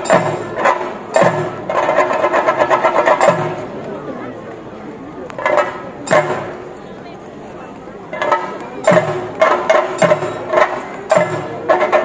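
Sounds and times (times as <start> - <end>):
drums in fast roll: 8.2 - 12.0.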